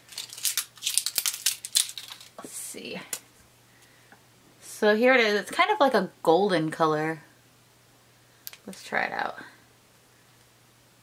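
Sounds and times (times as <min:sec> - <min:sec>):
plastic packaging crinkling: 0:00.0 - 0:02.4.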